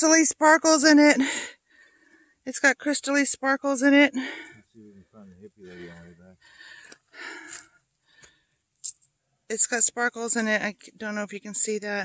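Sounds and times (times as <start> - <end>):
low murmuring voice: 4.8 - 6.4.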